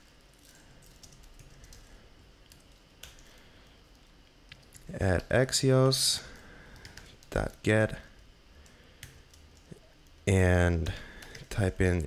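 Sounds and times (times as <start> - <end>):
computer keyboard keystrokes: 0.1 - 4.9, 6.3 - 7.6, 9.0 - 9.7, 11.2 - 11.5.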